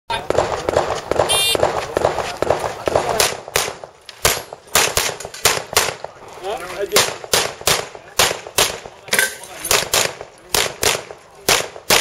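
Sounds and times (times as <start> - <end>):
pistol shots: 0.2 - 6.2, 6.9 - 12.0.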